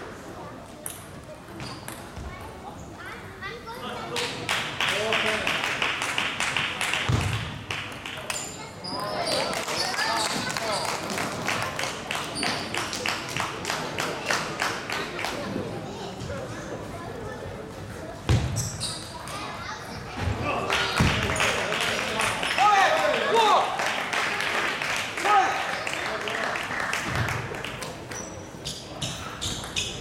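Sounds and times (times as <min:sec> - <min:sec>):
murmur of spectators: 0:00.0 - 0:30.0
shoe squeak: 0:01.6 - 0:02.0, 0:18.5 - 0:19.3, 0:28.1 - 0:30.0.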